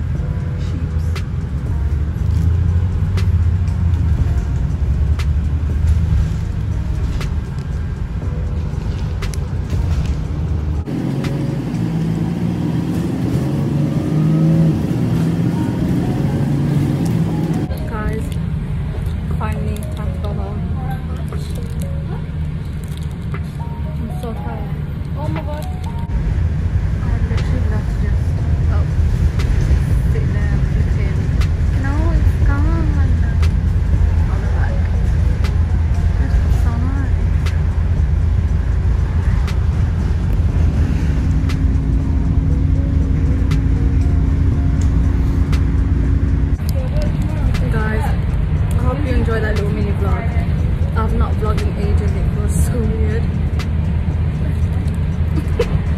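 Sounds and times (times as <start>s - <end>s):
music: 0.0s - 12.5s, 14.1s - 55.9s
bus rumbling: 0.0s - 55.9s
voices: 15.3s - 22.5s, 23.3s - 26.1s, 27.0s - 37.9s, 46.6s - 55.9s.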